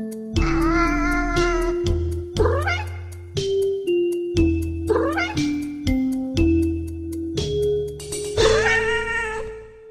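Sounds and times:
bass line: 0:00.4 - 0:03.3
fast ticking beat: 0:00.5 - 0:08.6
cat meowing: 0:02.4 - 0:03.0, 0:04.9 - 0:05.5, 0:08.4 - 0:09.5.

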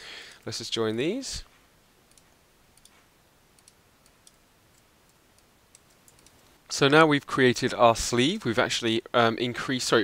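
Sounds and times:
computer mouse clicks: 0:02.1 - 0:03.0, 0:03.6 - 0:06.5.

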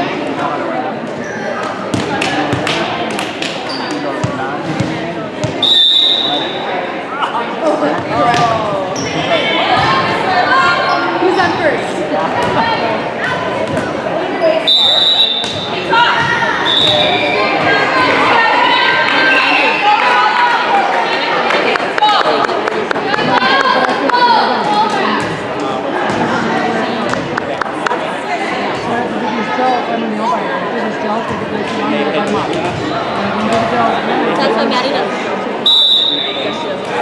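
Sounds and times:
spectators chattering: 0:00.0 - 0:37.0
referee's whistle: 0:05.5 - 0:06.6, 0:14.6 - 0:15.7, 0:16.6 - 0:17.6, 0:35.6 - 0:36.6.

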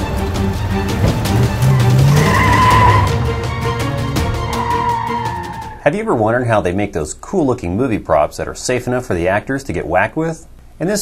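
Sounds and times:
car engine revving: 0:00.0 - 0:05.8
music: 0:00.0 - 0:05.9
tyres squealing: 0:00.0 - 0:05.9.

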